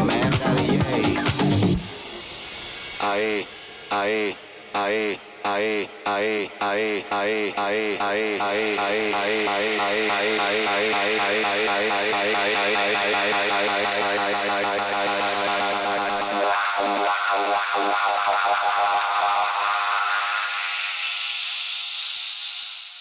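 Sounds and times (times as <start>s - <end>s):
electronic dance music: 0.0s - 23.0s
filter sweep: 0.0s - 23.0s.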